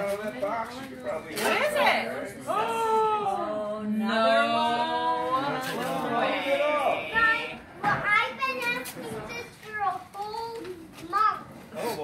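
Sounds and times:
family chatter: 0.0s - 12.0s.

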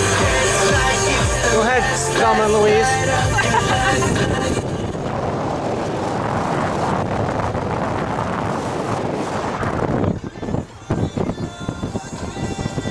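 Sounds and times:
car road noise: 0.0s - 12.9s
wind rushing over microphone: 0.0s - 12.9s.

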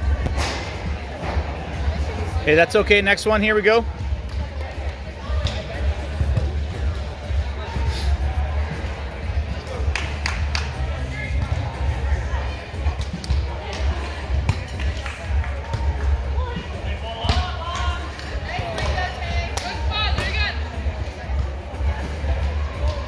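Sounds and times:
background music: 0.0s - 23.0s
volleyball slaps: 17.2s - 20.4s.

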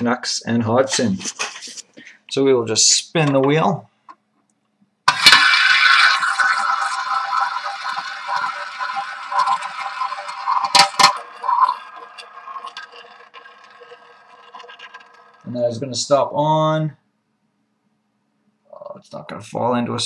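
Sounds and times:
roulette ball rolling rattle: 5.1s - 16.2s
roulette wheel spinning: 5.1s - 16.3s
sharp clacks of roulette ball: 10.6s - 15.5s.

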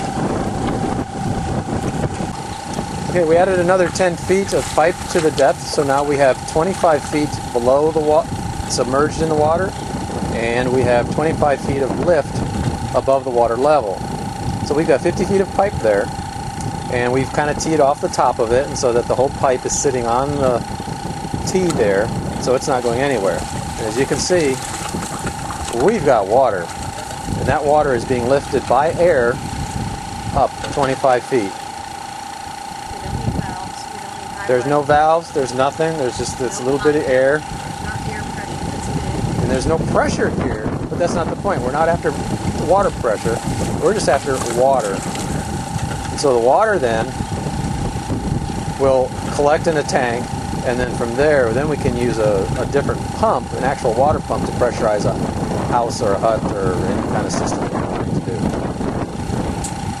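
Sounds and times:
air compressor whining: 0.0s - 60.0s
airlift pump gurgling: 0.0s - 60.0s.

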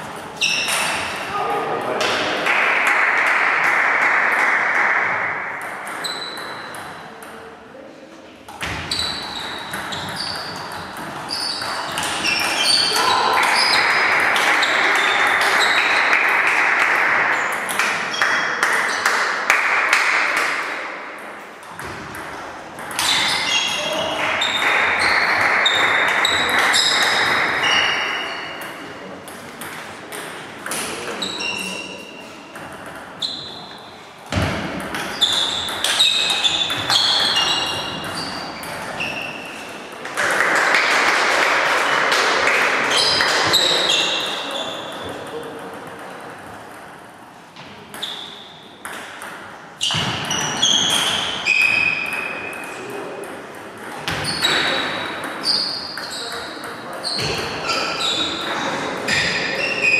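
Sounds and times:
shoes squeaking on floor: 0.0s - 1.2s, 5.8s - 6.8s, 8.6s - 16.0s, 22.9s - 28.6s, 31.0s - 32.6s, 33.2s - 34.0s, 34.9s - 39.9s, 42.9s - 45.1s, 48.0s - 48.7s, 49.8s - 52.6s, 54.0s - 59.9s
ping pong balls clicking on paddles: 1.9s - 7.6s, 8.5s - 31.9s, 32.5s - 59.9s.

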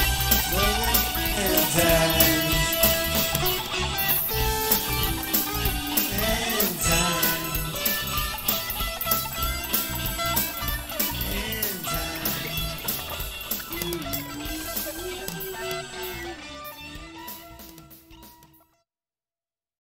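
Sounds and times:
drum beat: 0.0s - 16.2s
electric guitar lead: 0.0s - 18.6s.

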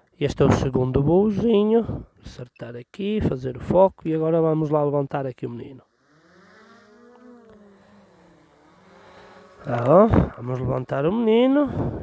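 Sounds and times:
drone motors humming: 5.8s - 12.0s.

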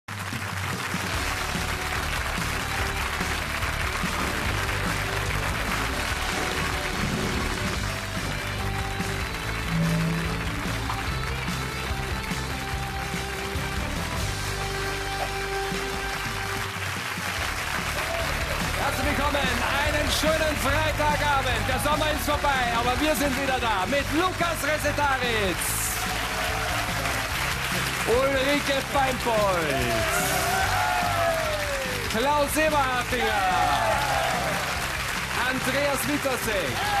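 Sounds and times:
audience applause: 0.1s - 37.0s
television theme music: 0.1s - 37.0s.

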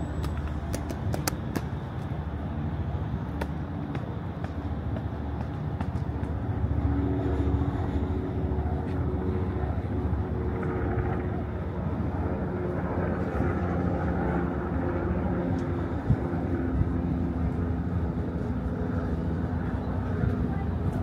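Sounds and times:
traffic rumble: 0.0s - 21.0s.

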